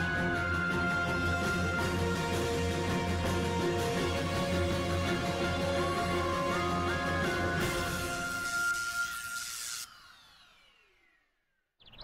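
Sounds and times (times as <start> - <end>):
electronic tones gliding downward: 7.4 - 12.0.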